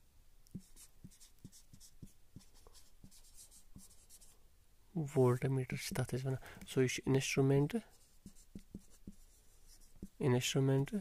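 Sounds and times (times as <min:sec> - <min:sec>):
marker writing on whiteboard: 0:00.5 - 0:04.3, 0:07.9 - 0:10.2.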